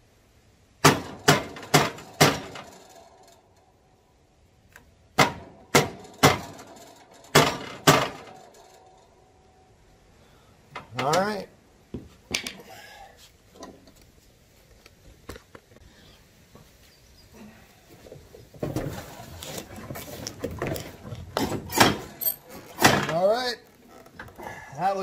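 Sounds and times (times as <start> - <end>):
sharp knocks: 0.8 - 2.9, 5.2 - 8.5
rubbing and handling noise: 17.8 - 24.4.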